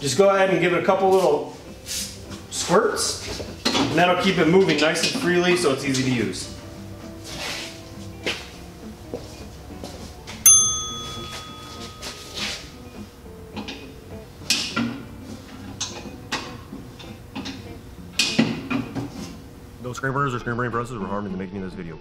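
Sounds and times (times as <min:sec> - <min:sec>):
faint background music: 0:00.0 - 0:22.0
bell-like ding: 0:10.4 - 0:12.6.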